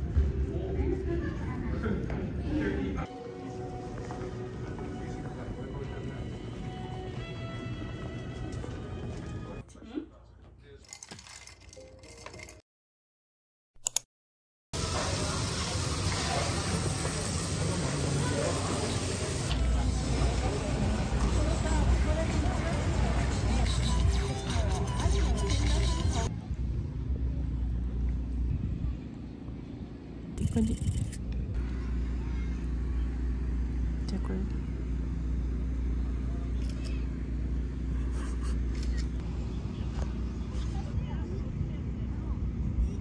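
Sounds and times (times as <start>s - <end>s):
low outdoor rumble: 15.3s - 43.0s.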